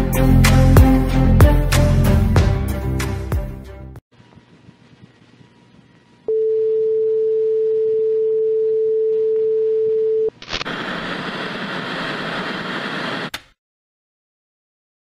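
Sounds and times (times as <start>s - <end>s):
hissing tv static: 10.3s - 13.5s.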